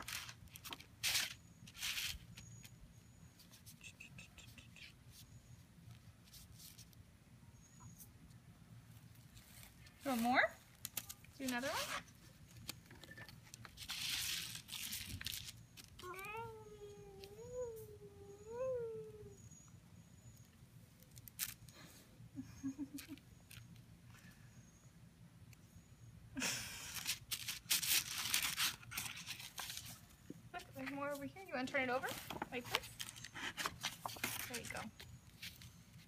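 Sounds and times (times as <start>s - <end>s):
scratchy rustling of paper: 0.0s - 2.8s, 5.9s - 7.0s, 9.0s - 16.2s, 27.0s - 31.3s, 31.9s - 36.0s.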